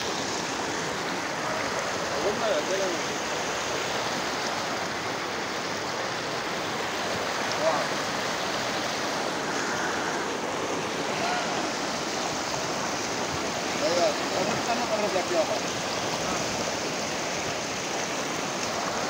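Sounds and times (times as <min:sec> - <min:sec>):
river rapids rushing over rocks: 0:00.0 - 0:19.0.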